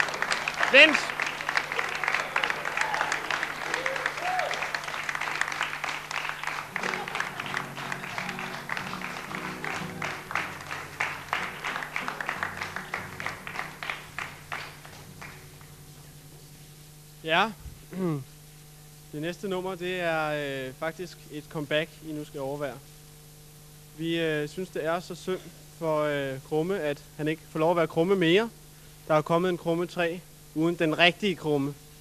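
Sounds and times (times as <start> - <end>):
audience applauding: 0.0 - 16.1
shouts and whoops: 1.8 - 4.8.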